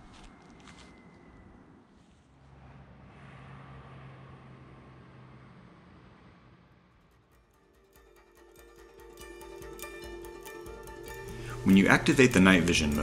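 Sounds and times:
plucked-string background music: 7.4 - 13.0.

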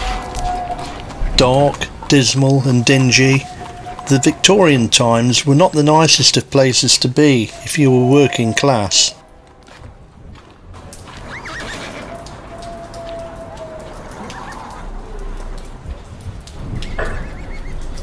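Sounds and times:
hooves clip-clopping: 0.0 - 18.0
horse whinnying: 0.2 - 5.1, 11.2 - 14.9.

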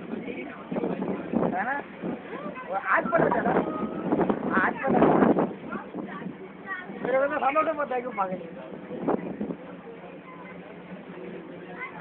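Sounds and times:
wind on microphone: 0.0 - 7.5, 8.6 - 9.8
boat engine rumble: 0.0 - 12.0
people chattering: 0.0 - 12.0.

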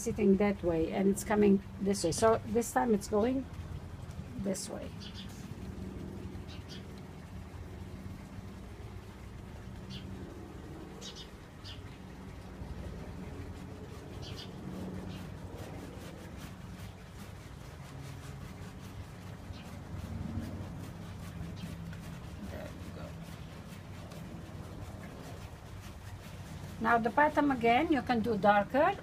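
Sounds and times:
steady low hum: 0.0 - 29.0
bristle brush scrubbing canvas: 13.0 - 29.0.

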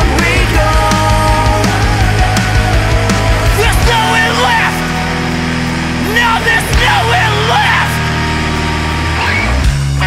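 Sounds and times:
hard rock band music: 0.0 - 10.0.

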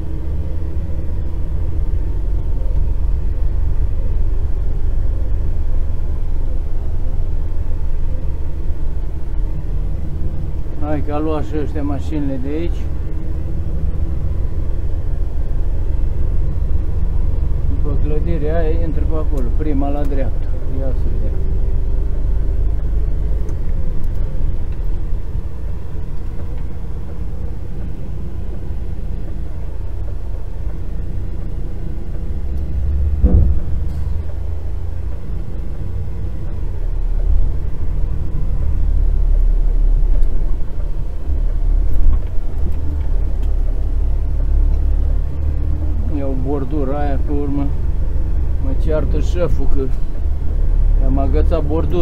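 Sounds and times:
lorry diesel engine running: 0.0 - 52.0
sharp knock: 33.2 - 34.1.

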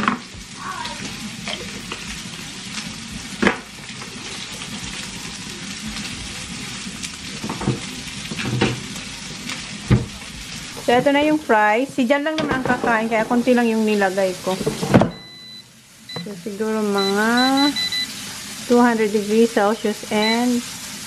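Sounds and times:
steak sizzling in a frying pan: 0.0 - 21.0.

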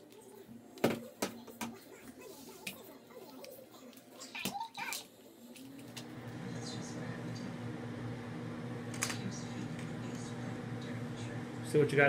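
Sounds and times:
low electric hum: 5.9 - 12.0.

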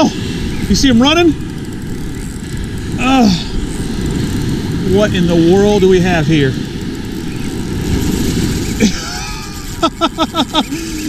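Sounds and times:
fishing reel drag running out: 0.0 - 11.0
surf rumble: 0.0 - 11.0
wind on microphone: 0.0 - 11.0
man laughing: 8.8 - 11.0.

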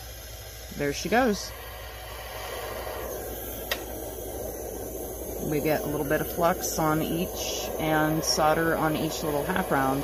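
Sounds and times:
soldering torch flame hissing: 0.0 - 10.0.

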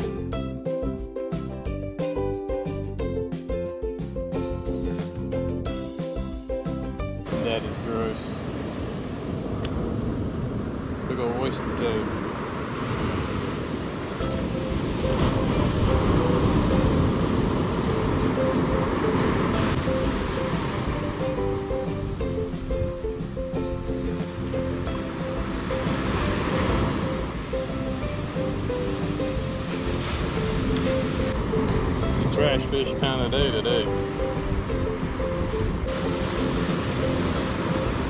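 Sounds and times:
background music of held notes: 0.0 - 8.4, 14.2 - 38.0
ocean surf breaking on beach: 6.6 - 38.0.

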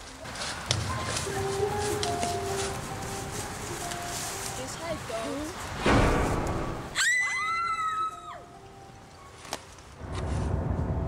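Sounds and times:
people screaming: 6.9 - 8.5.

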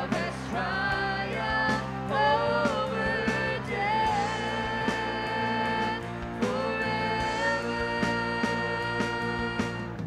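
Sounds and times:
guitars and bass: 0.0 - 10.0
voices singing in harmony: 0.0 - 10.0.

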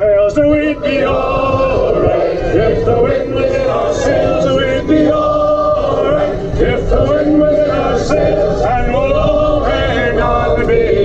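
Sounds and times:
choral singing with music: 0.0 - 11.0.

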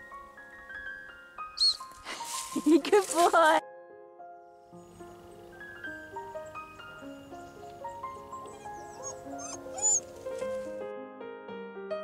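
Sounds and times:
keyboard music: 0.0 - 12.0
puppy whining: 1.6 - 1.8, 7.3 - 10.7.

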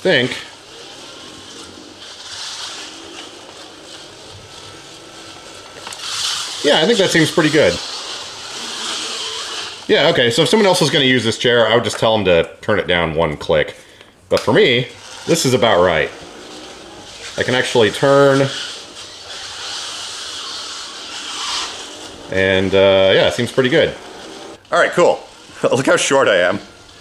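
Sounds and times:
wheelchair motors whirring: 0.0 - 12.0, 14.5 - 27.0.

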